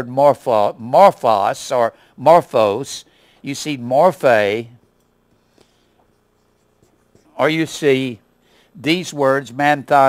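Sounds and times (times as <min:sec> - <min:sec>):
marker writing on whiteboard: 0:06.0 - 0:07.8.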